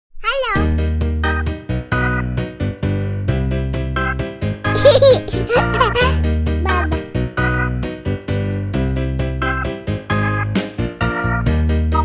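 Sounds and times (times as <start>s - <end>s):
upbeat children's music: 0.4s - 12.0s.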